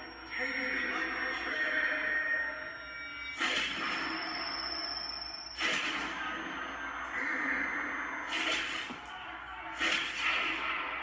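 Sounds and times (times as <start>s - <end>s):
drone of held tones: 0.0s - 8.3s.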